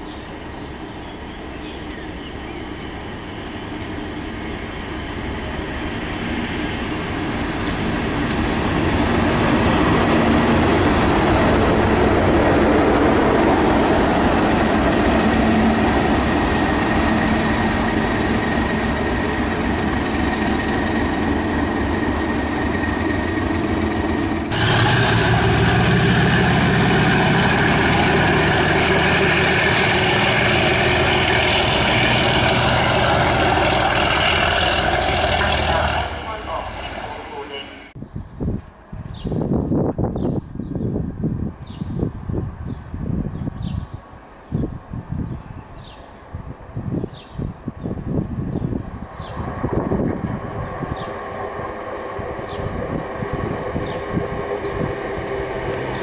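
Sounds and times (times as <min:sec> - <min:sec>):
diesel locomotive engine: 0:00.0 - 0:39.9, 0:46.2 - 0:56.0
high whine: 0:16.4 - 0:38.0.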